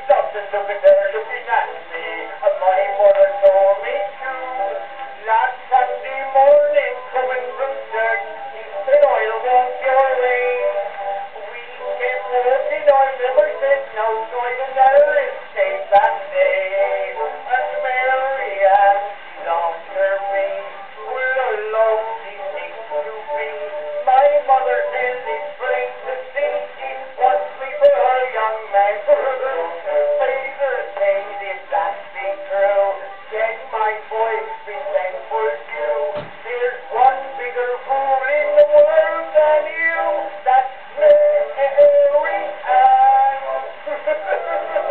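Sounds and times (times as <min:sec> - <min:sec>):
man singing comic song: 0:00.0 - 0:44.9.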